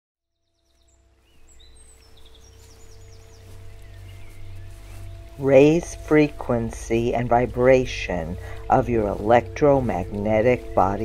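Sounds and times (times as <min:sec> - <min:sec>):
birds chirping: 0:00.4 - 0:11.0
low steady hum: 0:00.7 - 0:11.0.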